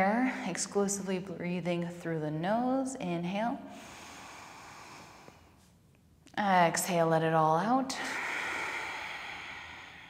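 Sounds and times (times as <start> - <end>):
woman exhaling slowly: 3.7 - 5.5, 8.0 - 10.0.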